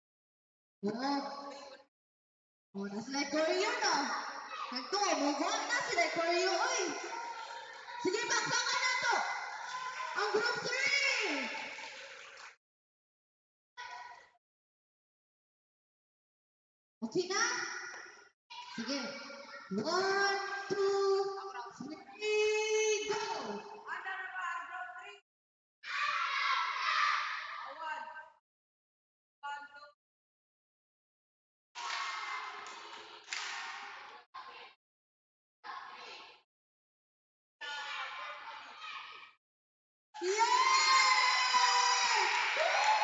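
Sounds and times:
children shouting and cheering: 4.3s - 12.5s, 25.8s - 28.0s, 31.8s - 33.0s, 37.6s - 39.4s, 40.2s - 43.0s.

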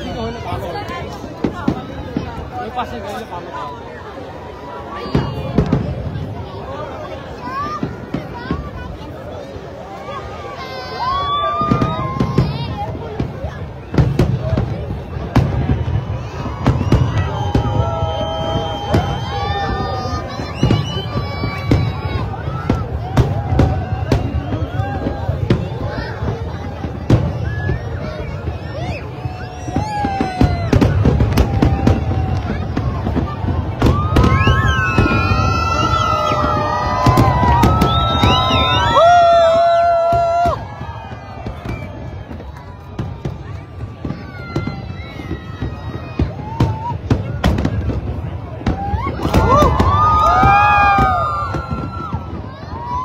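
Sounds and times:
crowd talking: 0.0s - 53.0s
fireworks bursting: 0.0s - 53.0s.

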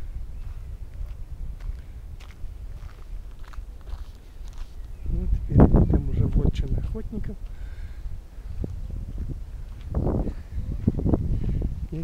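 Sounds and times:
low microphone rumble: 0.0s - 12.0s
footsteps on stony dirt track: 0.4s - 5.0s, 6.3s - 7.7s, 8.4s - 11.1s.

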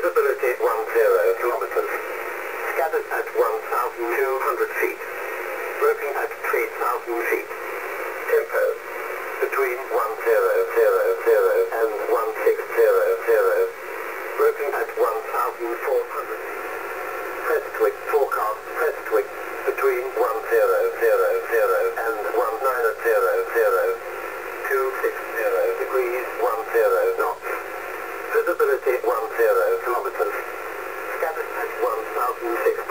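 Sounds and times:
voice over radio: 0.0s - 5.2s, 5.8s - 7.6s, 8.2s - 16.6s, 17.4s - 32.9s
shortwave radio hiss: 0.0s - 32.9s.

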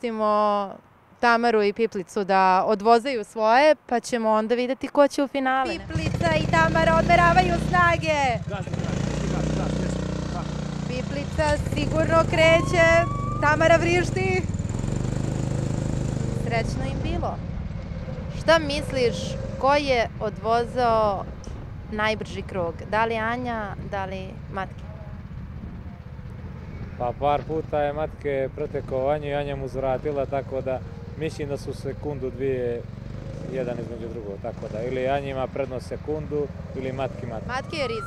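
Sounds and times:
go-kart engine drone: 5.7s - 38.0s
go-kart engine idling: 24.0s - 31.2s.

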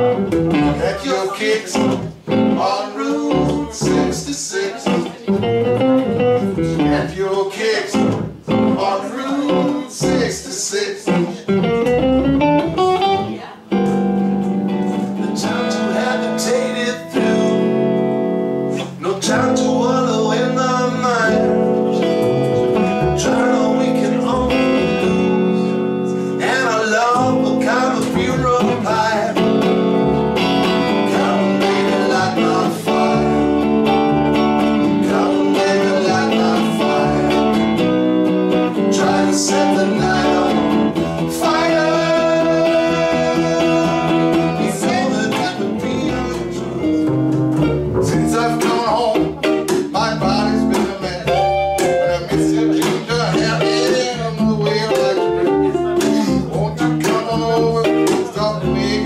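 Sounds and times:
plucked double bass: 0.0s - 1.0s, 1.8s - 2.6s, 3.3s - 4.2s, 4.9s - 7.2s, 8.0s - 8.8s, 11.2s - 16.4s, 20.8s - 26.4s, 27.2s - 59.0s
electric guitar playing: 0.0s - 7.2s, 7.9s - 10.4s, 11.0s - 59.0s.

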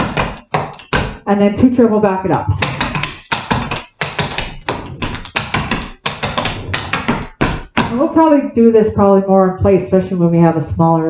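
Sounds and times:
tap shoes striking hard floor: 0.0s - 1.2s, 2.3s - 8.1s.

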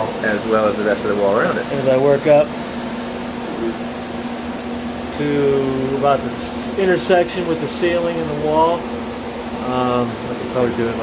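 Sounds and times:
fan running with low hum: 0.0s - 11.0s.

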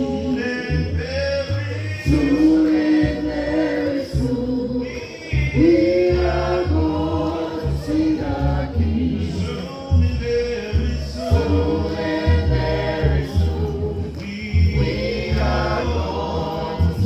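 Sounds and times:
congregation singing a hymn: 0.0s - 17.0s.

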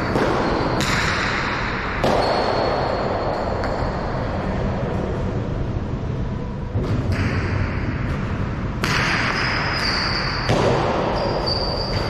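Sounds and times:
ball hitting walls echoing: 0.0s - 5.4s, 6.6s - 12.0s
low rumble of hall: 0.0s - 12.0s.

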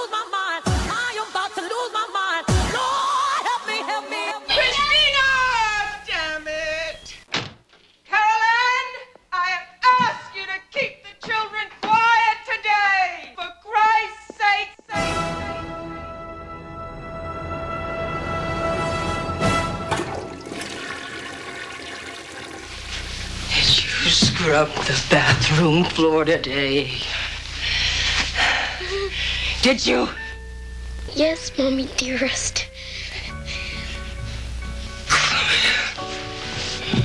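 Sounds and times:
woman's wordless cry: 2.7s - 3.7s
toilet flushing: 19.4s - 24.0s.

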